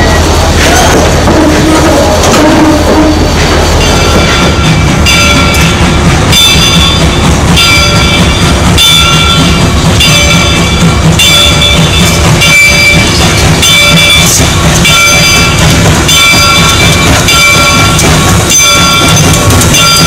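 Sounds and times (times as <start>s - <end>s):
bell ringing: 0.0s - 20.0s
steam train passing: 0.0s - 20.0s.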